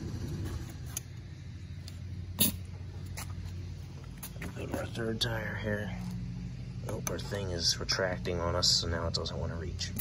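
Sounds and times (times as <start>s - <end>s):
air compressor humming: 0.0s - 10.0s.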